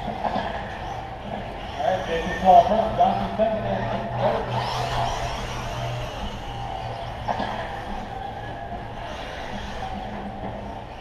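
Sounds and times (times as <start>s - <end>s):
steady low hum: 0.0s - 11.0s
toy truck motors whining: 0.0s - 11.0s.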